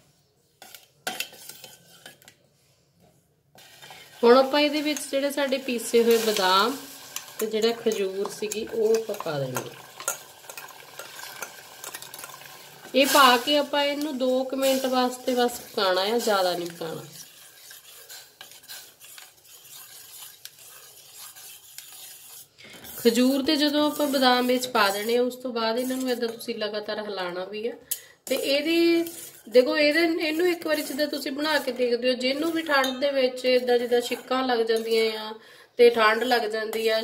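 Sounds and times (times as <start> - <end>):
spoon scraping and clinking pot: 0.6 - 2.4, 3.5 - 26.6, 27.9 - 35.2, 35.9 - 37.0
faint sizzle: 3.5 - 26.7.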